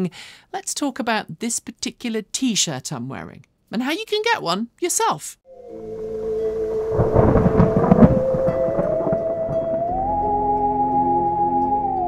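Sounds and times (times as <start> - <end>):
ambient music with held tone: 5.5 - 12.0
thunder crack and rumble: 5.8 - 10.0.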